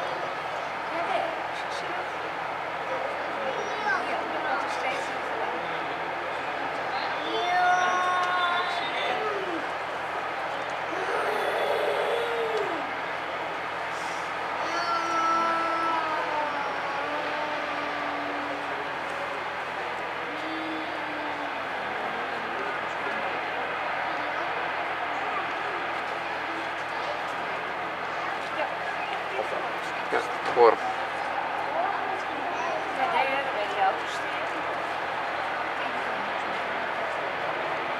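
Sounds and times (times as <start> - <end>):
people talking off-mic: 0.0 - 37.9
steady background noise: 0.0 - 37.9.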